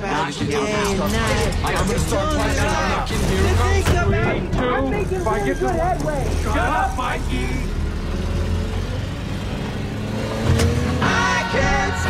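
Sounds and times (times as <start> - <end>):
suv engine rumbling: 0.0 - 12.0.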